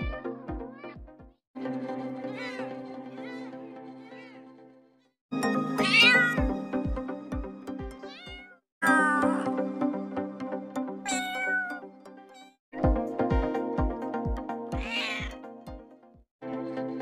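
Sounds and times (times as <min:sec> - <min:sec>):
background music with steady beat: 0:00.0 - 0:02.3, 0:05.3 - 0:08.4, 0:12.8 - 0:17.0
cat meowing: 0:05.8 - 0:06.4, 0:08.1 - 0:09.4, 0:11.1 - 0:11.8, 0:14.8 - 0:15.4.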